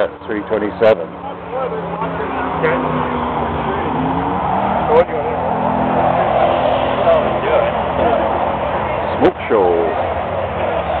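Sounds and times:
car engine at high revs: 0.0s - 11.0s
crowd voices: 0.0s - 11.0s.

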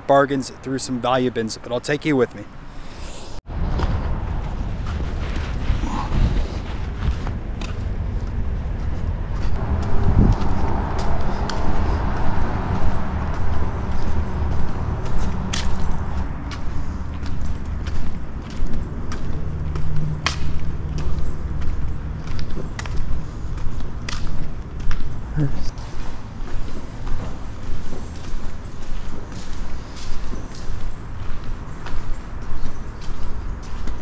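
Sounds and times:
footsteps: 2.7s - 34.0s
steady low rumble: 3.0s - 25.7s.

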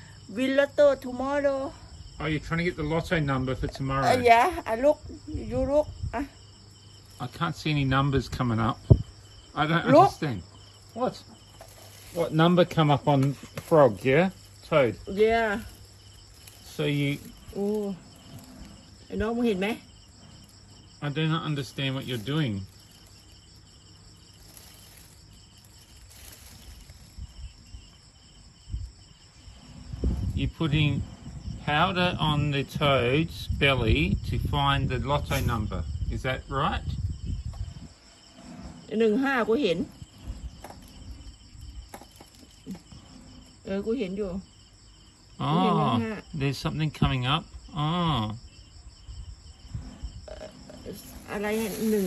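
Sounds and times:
insect chirping: 0.0s - 52.0s
low handling bumps: 12.5s - 44.0s.

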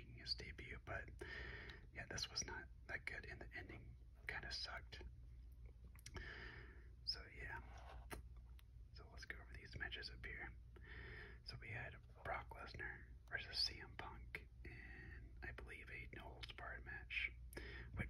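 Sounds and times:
person whispering: 0.0s - 1.2s, 1.9s - 5.0s, 7.0s - 8.2s, 9.0s - 10.6s, 11.4s - 18.0s
steady low hum: 0.0s - 18.0s.

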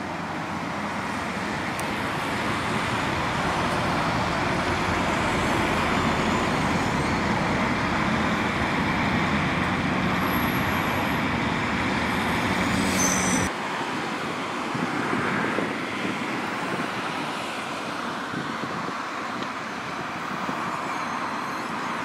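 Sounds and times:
diesel engine running under load: 0.2s - 12.9s.

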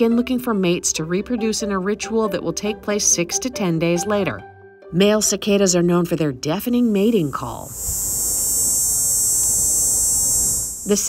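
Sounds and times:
cicada buzzing: 6.8s - 11.0s.

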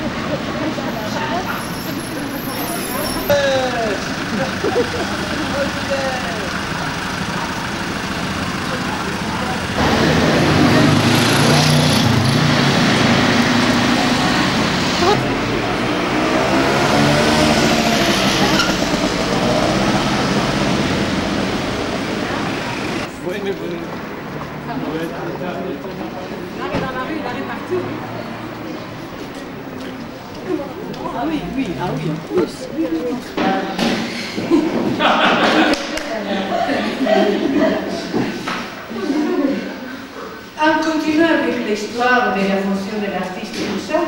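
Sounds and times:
people talking: 0.0s - 20.8s, 21.9s - 44.0s
road noise: 0.0s - 44.0s
street traffic: 0.0s - 44.0s
vehicle engine running: 3.3s - 23.2s.

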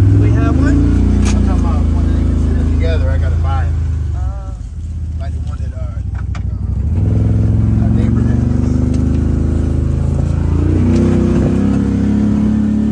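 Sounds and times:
vehicle engine under throttle: 0.0s - 12.9s.

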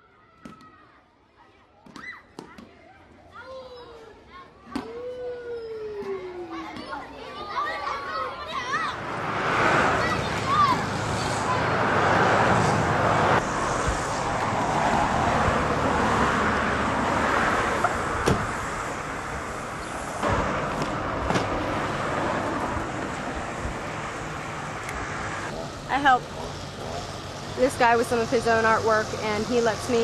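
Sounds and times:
road traffic noise: 3.5s - 30.0s.

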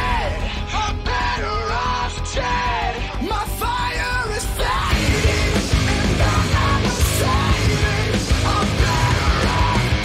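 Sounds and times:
yelled vocals: 0.0s - 10.0s
electric guitar lead: 3.0s - 10.0s.

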